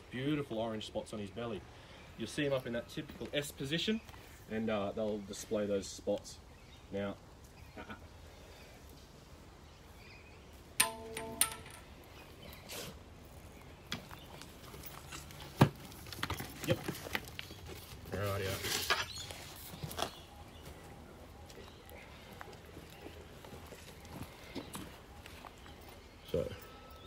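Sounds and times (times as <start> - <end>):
handling knocks and clicks: 10.8 - 12.2.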